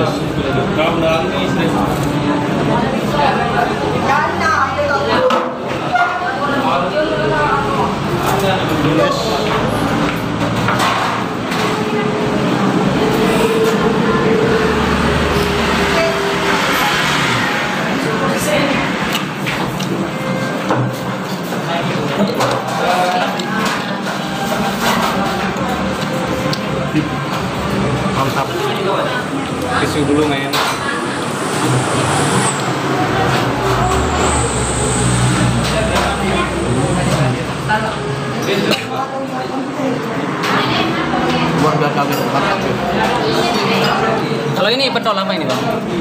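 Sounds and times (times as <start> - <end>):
road traffic rumble: 7.0 - 21.7, 23.4 - 44.6
vehicle engine rumble: 29.2 - 38.4.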